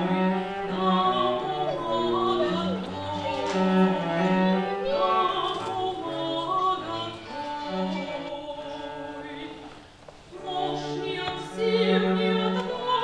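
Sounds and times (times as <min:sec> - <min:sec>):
bowed cello: 0:00.0 - 0:13.0
soprano voice singing: 0:00.0 - 0:13.0.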